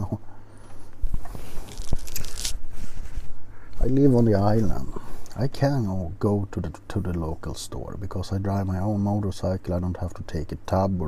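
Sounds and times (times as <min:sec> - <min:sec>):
scratchy hiss: 0:00.6 - 0:11.0
clothing rubbing on clip-on microphone: 0:00.8 - 0:05.3.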